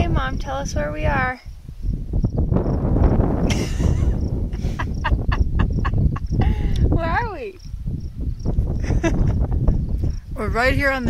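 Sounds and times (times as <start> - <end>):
wind buffeting microphone: 0.0 - 11.0
woman laughing: 3.5 - 7.4, 8.8 - 9.6.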